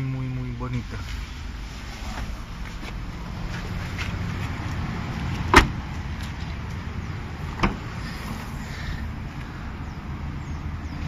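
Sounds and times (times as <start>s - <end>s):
car door thud: 5.5s - 5.8s, 7.6s - 7.9s.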